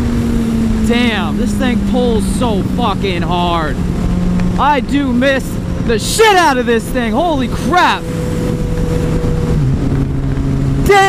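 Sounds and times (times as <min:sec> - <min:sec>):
motorcycle engine running: 0:00.0 - 0:11.0
wind noise: 0:00.0 - 0:11.0.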